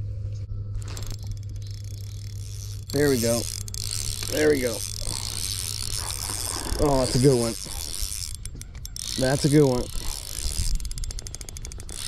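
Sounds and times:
fishing reel whirring: 0.8s - 12.0s.

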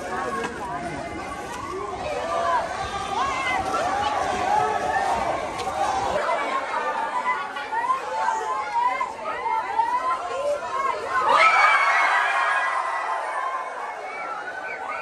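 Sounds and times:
crowd of children and adults talking: 0.0s - 15.0s.

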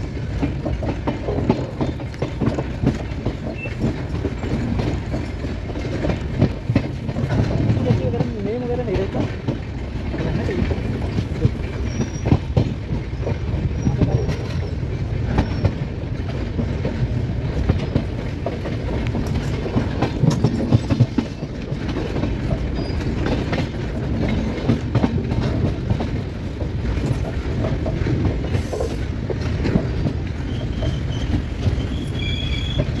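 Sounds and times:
train wheels rumbling: 0.0s - 33.0s
wheels clacking over rail joints: 0.0s - 33.0s.

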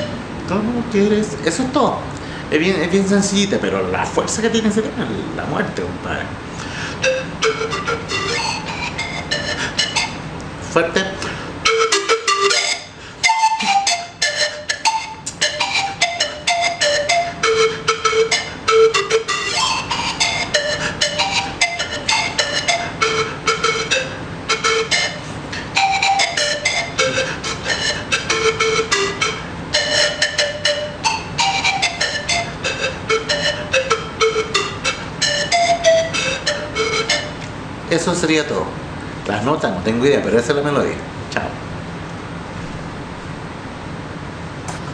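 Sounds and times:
panpipes melody: 0.0s - 0.2s, 6.7s - 10.3s, 11.2s - 37.5s.

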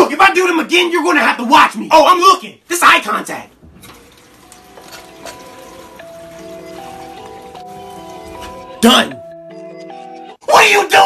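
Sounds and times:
faint running water: 2.7s - 8.9s
dishes clinking: 3.6s - 8.8s
light background music: 3.7s - 11.0s.

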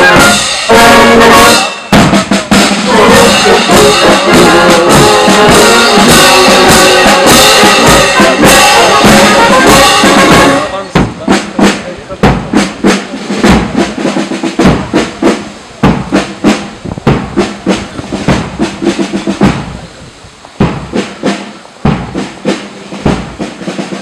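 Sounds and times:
marching snare and bass drums: 0.0s - 24.0s.

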